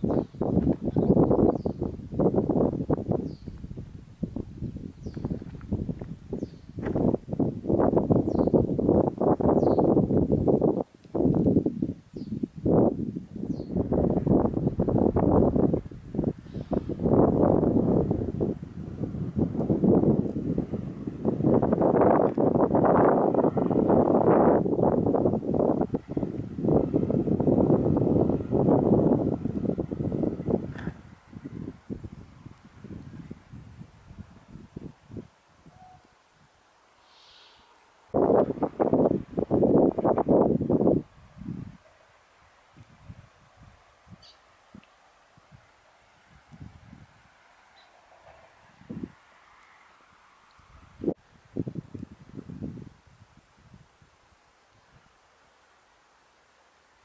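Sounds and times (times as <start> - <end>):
wind buffeting microphone: 0.0 - 36.6, 38.1 - 41.9, 42.6 - 49.3, 50.6 - 54.2.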